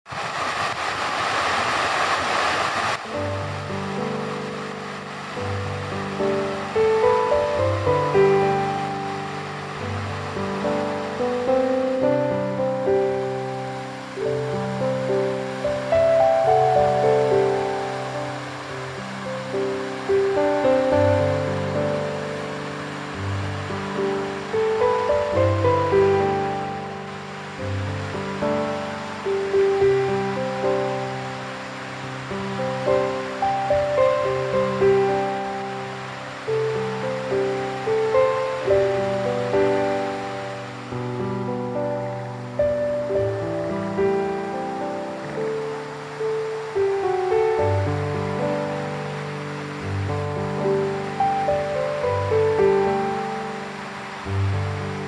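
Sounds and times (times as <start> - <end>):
fountain water splashing: 0.1 - 55.0
slow background music: 3.0 - 55.0.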